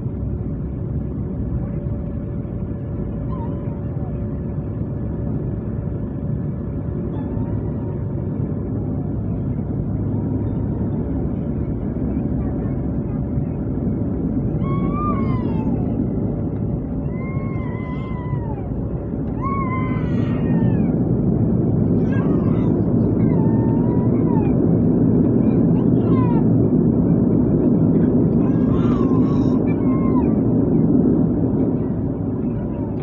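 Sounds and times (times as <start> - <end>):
steady hum tone: 0.0 - 33.0
turboprop engine and propeller noise: 0.0 - 33.0
wavering high-pitched cries: 14.6 - 16.0, 17.0 - 21.0, 22.0 - 24.7, 28.4 - 30.4.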